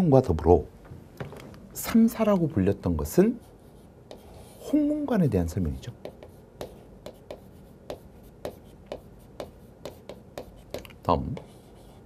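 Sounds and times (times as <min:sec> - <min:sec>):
chalk writing on chalkboard: 0:03.3 - 0:04.8, 0:05.6 - 0:12.0.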